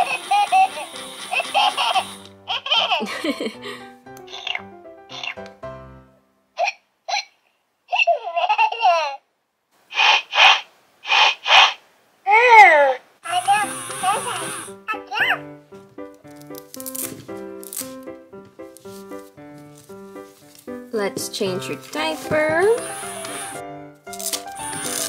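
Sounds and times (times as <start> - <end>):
baby giggles and babbles: 7.9 - 9.3, 12.3 - 15.4
sing-song baby vocals: 12.3 - 15.4
tune from toy speaker: 13.3 - 14.7.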